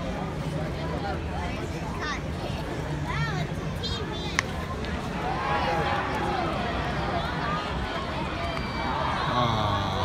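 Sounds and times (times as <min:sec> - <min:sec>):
crowd chatting: 0:00.0 - 0:10.0.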